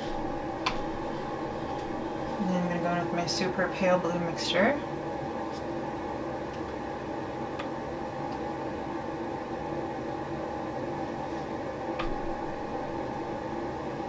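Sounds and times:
machine-like hum: 0.0 - 14.0.

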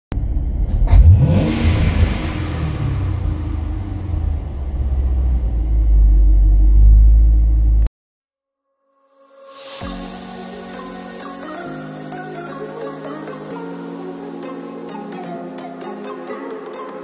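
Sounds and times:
low engine rumble: 0.1 - 7.9
car engine revving: 0.2 - 7.9.

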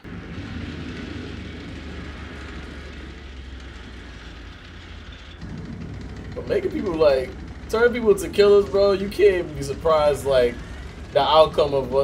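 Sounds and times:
heavy vehicle engines rumbling: 0.0 - 12.0.

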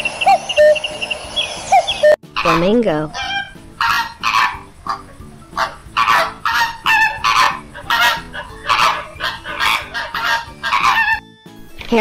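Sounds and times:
flamingos honking: 0.0 - 11.2.

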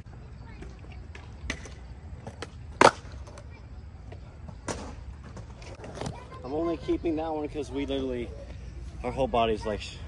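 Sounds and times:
skateboard clacking on concrete: 0.6 - 6.5.

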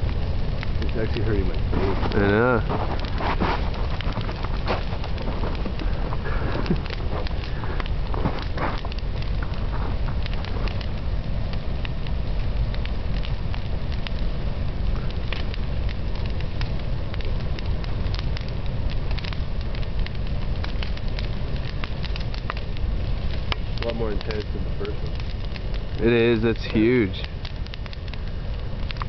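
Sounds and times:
fire crackling and popping: 0.0 - 29.0.

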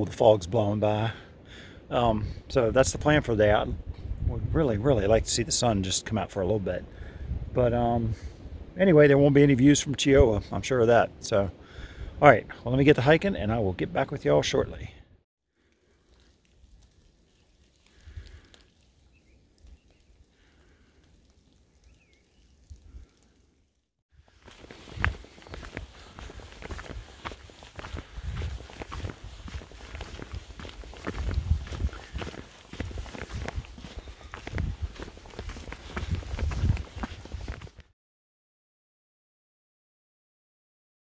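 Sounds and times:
boots crunching on wet leaves: 24.2 - 37.8.

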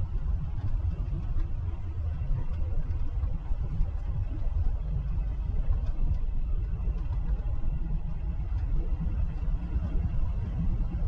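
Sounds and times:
truck engine and road rumble: 0.0 - 11.0.

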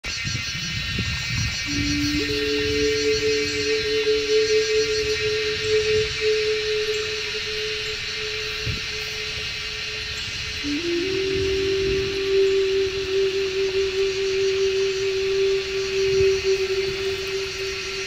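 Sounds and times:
crickets trilling: 0.0 - 18.0
held notes of background music: 1.7 - 18.0.

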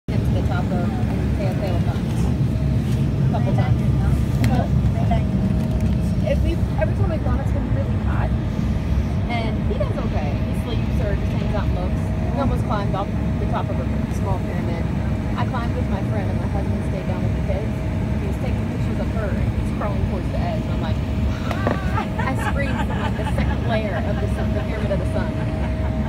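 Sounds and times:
airliner cabin rumble: 0.1 - 26.0
passengers chattering: 0.1 - 26.0.

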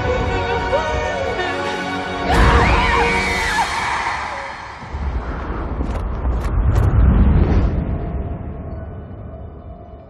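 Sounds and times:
deep low rumble: 4.8 - 10.0.

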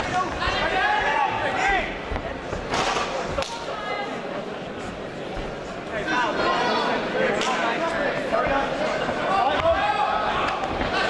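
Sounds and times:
crowd shouting: 6.0 - 11.0.

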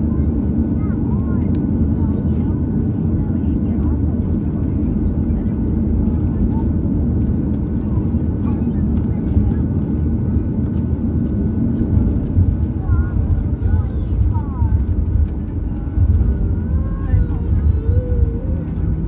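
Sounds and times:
airliner engines rumbling: 0.0 - 19.0.

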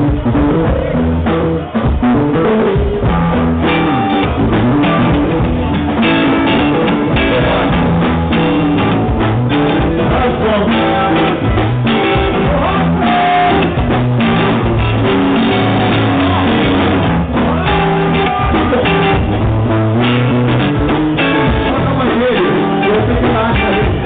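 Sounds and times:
drum kit: 0.0 - 24.0
electric bass: 0.0 - 24.0
electric guitar: 0.0 - 24.0.

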